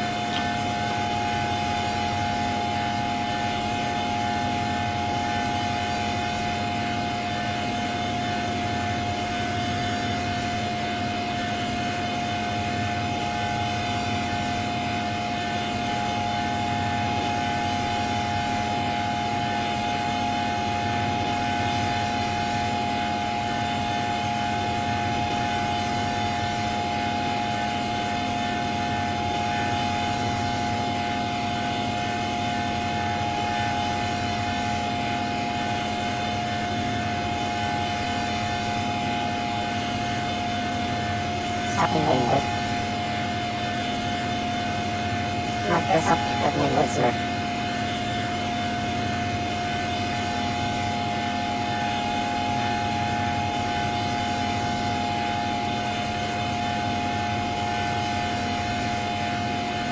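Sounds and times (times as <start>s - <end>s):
electronic drone with hiss: 0.0s - 59.9s.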